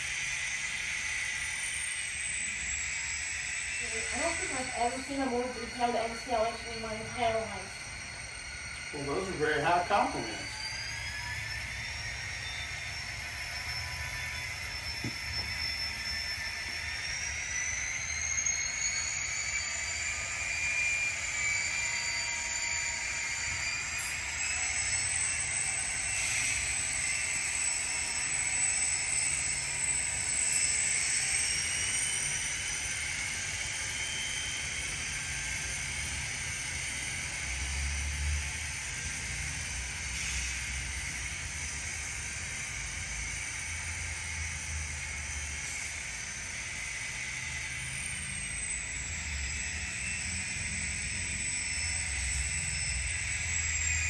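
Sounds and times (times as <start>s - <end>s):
diesel engine sound from speaker: 3.8s - 7.9s.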